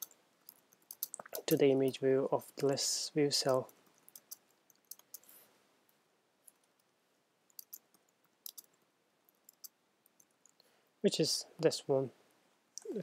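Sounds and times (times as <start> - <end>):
faint keyboard typing: 0.0 - 10.7.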